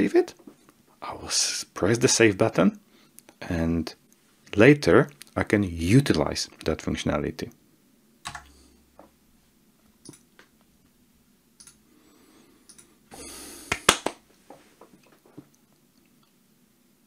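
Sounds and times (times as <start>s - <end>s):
computer keyboard clicks: 8.2s - 8.5s.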